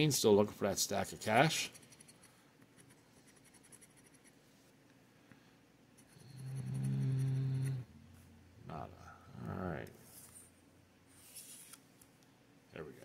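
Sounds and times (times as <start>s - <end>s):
coin scratching lottery ticket: 1.3s - 4.4s
man humming: 6.2s - 8.0s.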